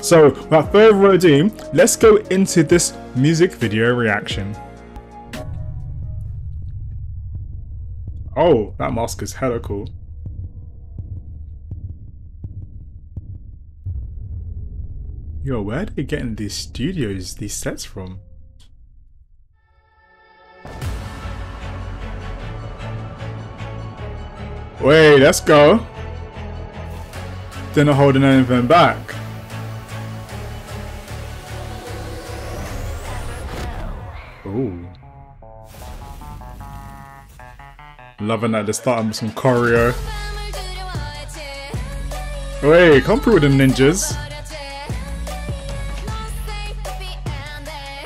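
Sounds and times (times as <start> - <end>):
low throbbing bass pulse: 5.0 - 19.5, 20.7 - 33.9, 39.8 - 47.4.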